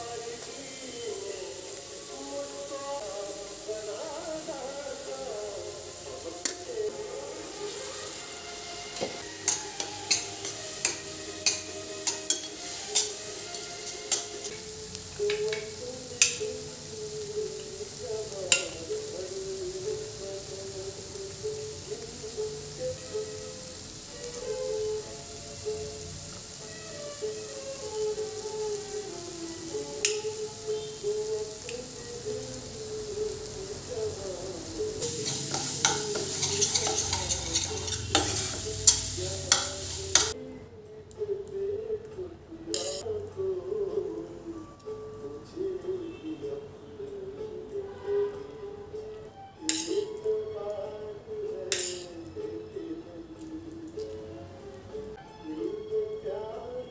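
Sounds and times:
onions sizzling: 0.0 - 40.4, 42.7 - 43.0, 49.6 - 50.3, 51.7 - 52.2
soft instrumental melody: 6.2 - 20.4, 21.2 - 56.9
spoon clinking against pan: 9.0 - 16.6, 18.5 - 18.9, 35.0 - 40.4, 42.7 - 43.0, 49.7 - 50.1, 51.7 - 52.2.

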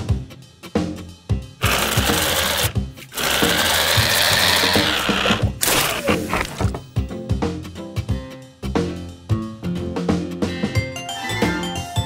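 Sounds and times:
juicer motor whirring and grinding: 1.6 - 6.8.

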